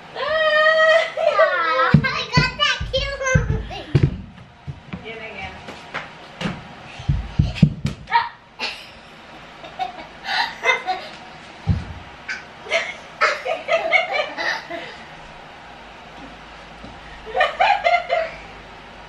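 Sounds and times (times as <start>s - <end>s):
bare feet thumping on floor: 1.9s - 8.2s, 11.6s - 12.1s.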